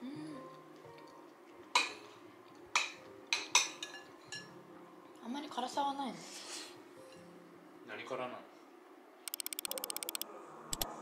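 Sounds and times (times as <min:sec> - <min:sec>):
rapid sharp ticks: 0:09.3 - 0:10.2
sharp double click: 0:09.3 - 0:10.2.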